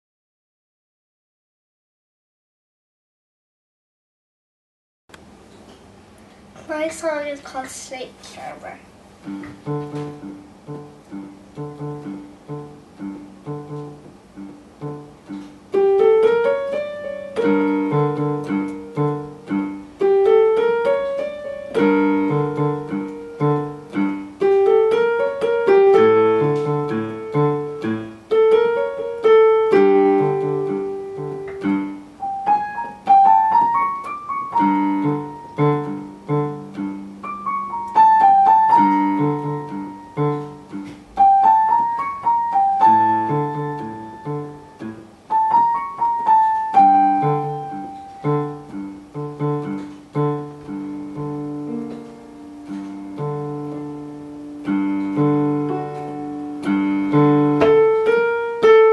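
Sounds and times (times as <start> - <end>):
digital piano piece: 5.3 - 58.9.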